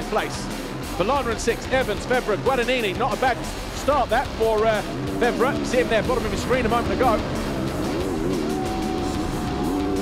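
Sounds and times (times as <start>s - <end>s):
motocross bike engine revving: 2.3s - 10.0s
music with long held note: 3.4s - 10.0s.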